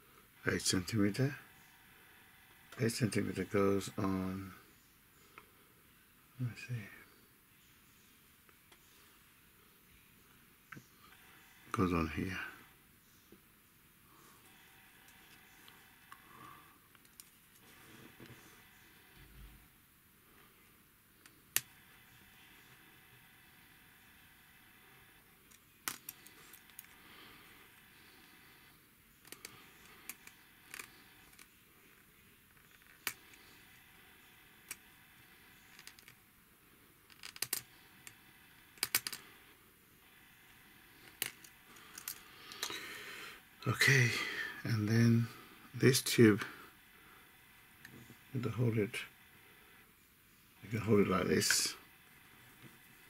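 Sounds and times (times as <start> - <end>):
low steady hiss: 0.0 - 53.0.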